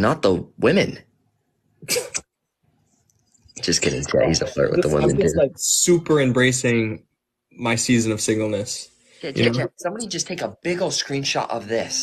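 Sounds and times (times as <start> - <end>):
short sharp voice burst: 3.6 - 7.0, 9.4 - 9.6.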